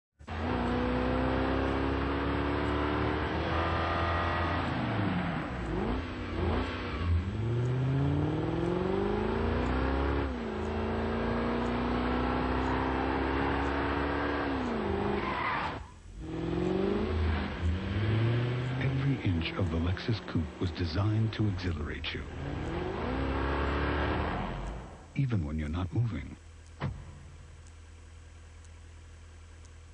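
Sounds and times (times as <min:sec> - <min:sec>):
car engine accelerating: 0:00.2 - 0:29.9.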